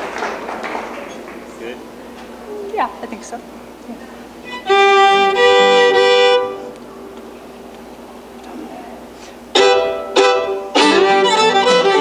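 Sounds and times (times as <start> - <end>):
fiddle bowed double stop: 4.5 - 6.6, 9.6 - 12.0.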